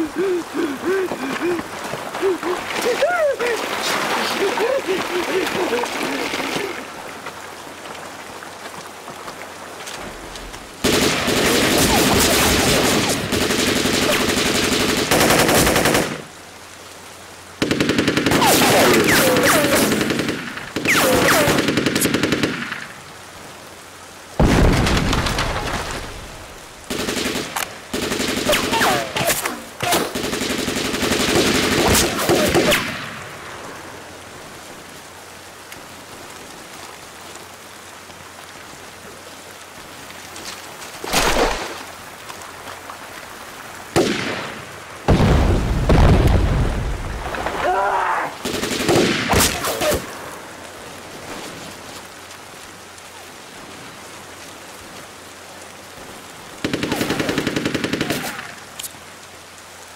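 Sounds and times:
steady rain: 0.0 - 59.9
automatic gunfire bursts: 17.6 - 22.7, 26.9 - 29.3, 56.6 - 58.5.

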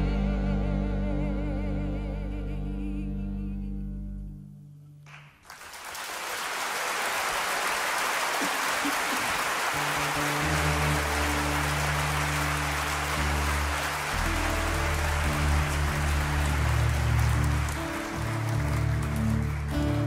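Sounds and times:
sustained accordion notes: 0.0 - 4.6, 9.5 - 20.0
audience applause: 5.1 - 20.0.

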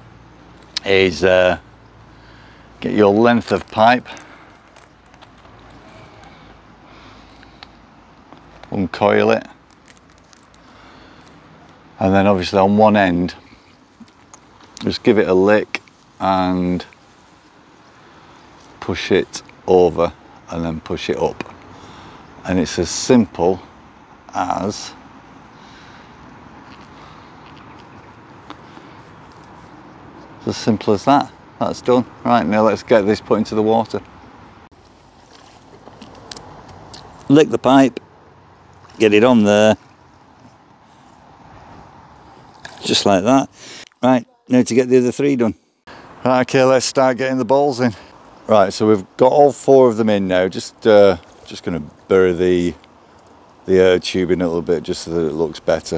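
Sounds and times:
faint outdoor background hiss: 0.0 - 55.9
plastic tubing rustling: 3.3 - 6.4, 34.8 - 37.3.

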